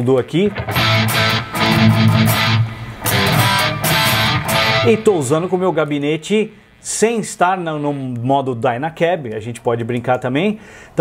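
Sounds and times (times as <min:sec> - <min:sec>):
electric guitar chords strummed: 0:00.5 - 0:05.6.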